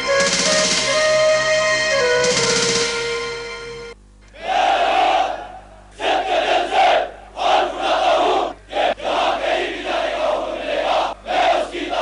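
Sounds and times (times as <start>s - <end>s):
troops shouting in unison: 4.4s - 12.0s.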